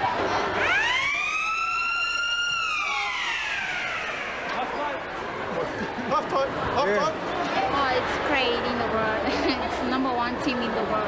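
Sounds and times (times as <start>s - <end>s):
siren wailing: 0.5s - 5.4s.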